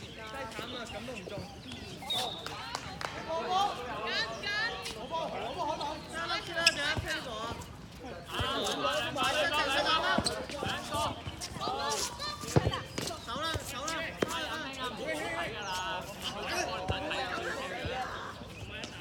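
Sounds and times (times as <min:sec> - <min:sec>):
players shouting: 0:03.2 - 0:12.8.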